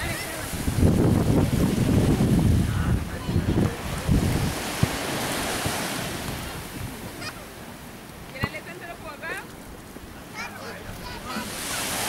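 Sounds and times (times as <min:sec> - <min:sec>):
sea water washing: 0:00.0 - 0:12.0
wind buffeting microphone: 0:00.0 - 0:12.0.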